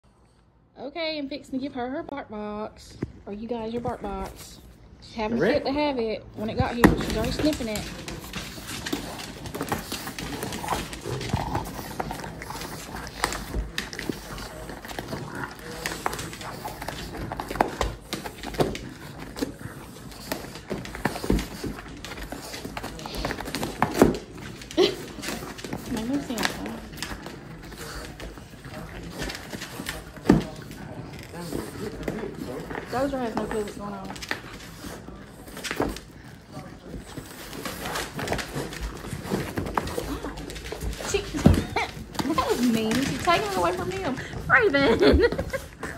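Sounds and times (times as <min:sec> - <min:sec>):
dog nails on wooden floor: 0:05.7 - 0:45.9
dogs scratching cardboard box: 0:06.4 - 0:45.9.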